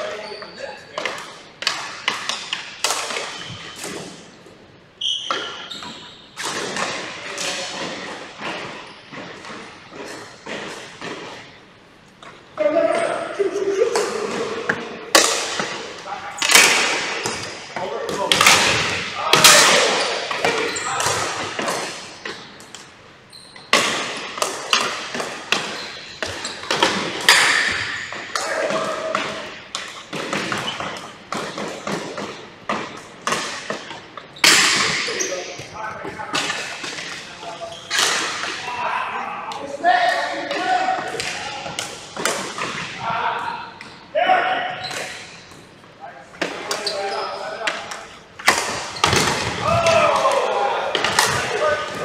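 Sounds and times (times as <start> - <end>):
players' voices: 12.3 - 22.9, 23.9 - 30.8, 34.7 - 52.0.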